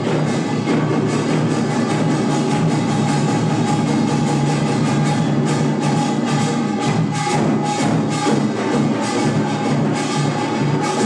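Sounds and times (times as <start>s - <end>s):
drums in fast rhythm: 0.0s - 11.0s.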